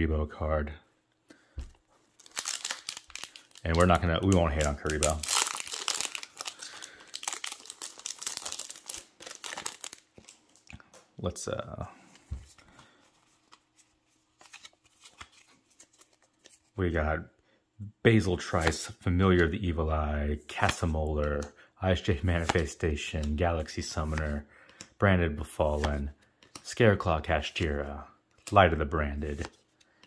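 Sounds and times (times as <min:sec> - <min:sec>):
cards being handled: 0:01.6 - 0:11.1, 0:12.0 - 0:16.8, 0:22.1 - 0:30.0
foil pack tearing open: 0:04.8 - 0:10.0.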